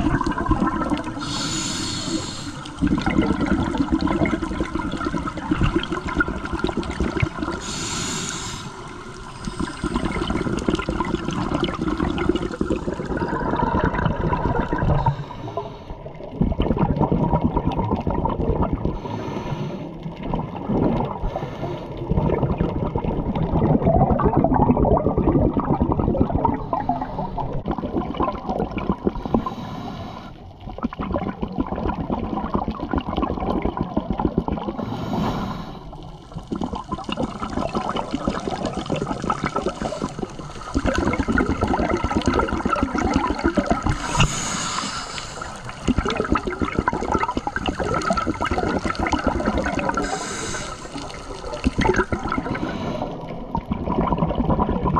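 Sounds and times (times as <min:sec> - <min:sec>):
underwater exhalation bubbles: 0:00.0 - 0:08.2, 0:08.9 - 0:15.3, 0:16.0 - 0:19.1, 0:20.0 - 0:21.4, 0:22.0 - 0:29.6, 0:30.6 - 0:54.9.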